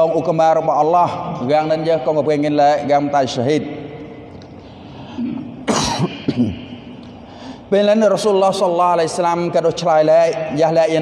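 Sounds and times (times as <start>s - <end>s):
man clearing throat: 5.1s - 6.8s
man coughing: 5.1s - 6.8s.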